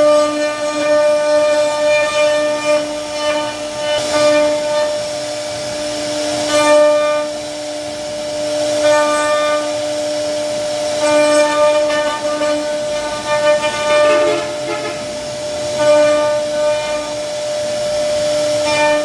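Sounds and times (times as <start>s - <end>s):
router spindle whining: 9.6s - 19.0s.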